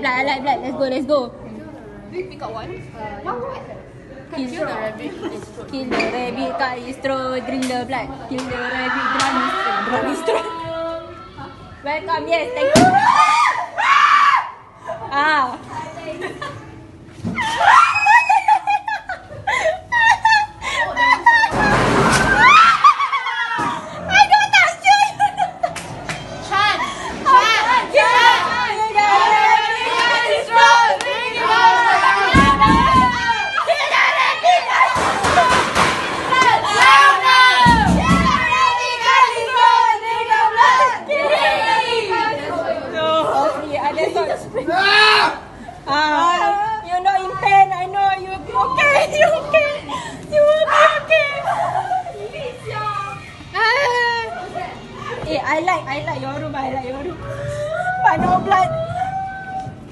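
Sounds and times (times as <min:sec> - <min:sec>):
young people's voices: 0:00.0 - 0:59.9
young people crying out: 0:19.8 - 0:25.4, 0:36.3 - 0:42.4, 0:44.7 - 0:45.6.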